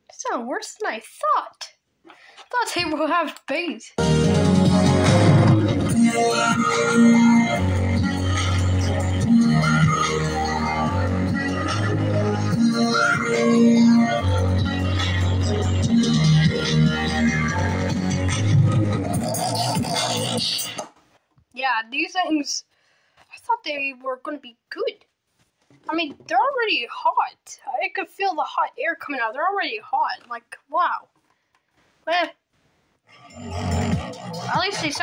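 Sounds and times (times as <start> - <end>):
electronic music through speakers: 4.0 - 20.9, 33.6 - 35.0.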